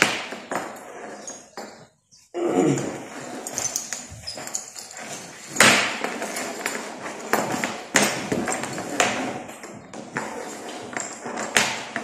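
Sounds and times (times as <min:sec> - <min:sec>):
rope rustling: 0:02.8 - 0:09.6.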